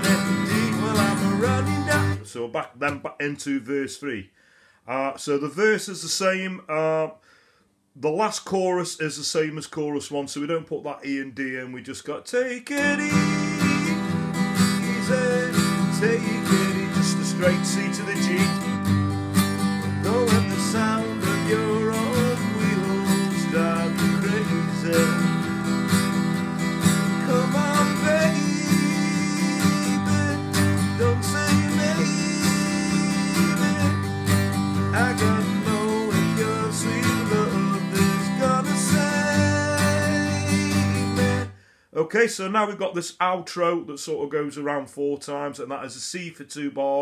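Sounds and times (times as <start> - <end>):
acoustic guitar strumming: 0.0 - 2.3, 12.7 - 41.5
man singing: 0.0 - 4.2, 4.9 - 7.2, 8.0 - 18.8, 19.6 - 26.3, 27.0 - 47.0.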